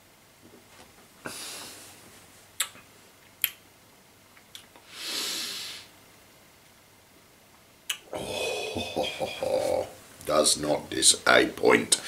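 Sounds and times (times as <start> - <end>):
lip smacks: 2.6 - 3.6, 4.4 - 4.9, 7.9 - 8.1
long breath out: 8.1 - 8.8
man speaking: 8.1 - 12.0.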